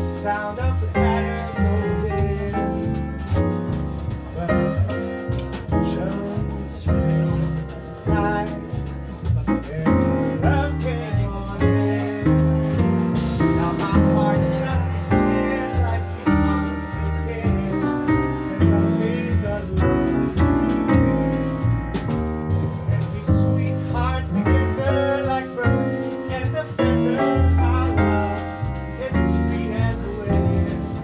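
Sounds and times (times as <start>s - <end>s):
acoustic piano: 0.0s - 31.0s
double bass: 0.0s - 31.0s
drums and cymbals: 0.0s - 31.0s.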